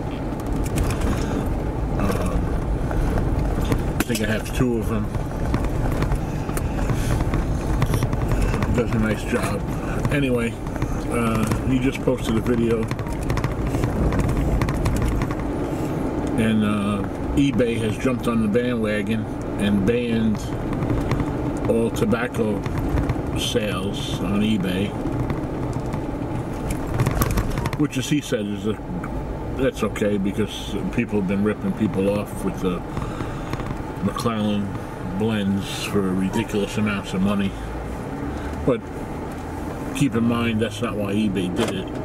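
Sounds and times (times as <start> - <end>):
road and engine rumble: 0.0 - 42.0
light clicks and rattles: 0.3 - 18.7, 19.3 - 28.1.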